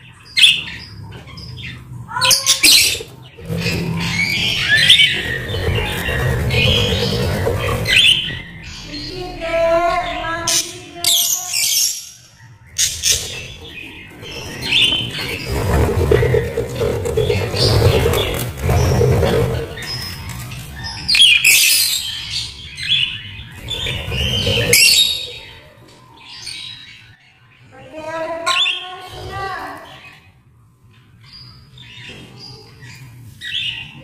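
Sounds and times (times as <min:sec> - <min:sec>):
birds chirping and squawking: 0:00.0 - 0:34.0.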